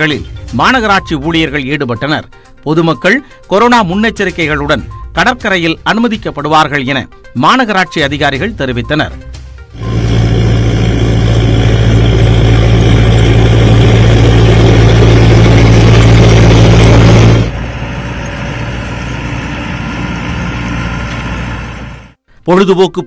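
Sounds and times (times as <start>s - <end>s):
tractor diesel engine running: 9.7s - 22.2s.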